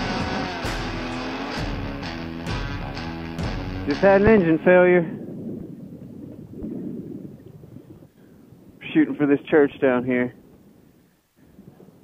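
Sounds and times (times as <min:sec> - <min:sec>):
wind rushing over microphone: 0:03.8 - 0:12.0.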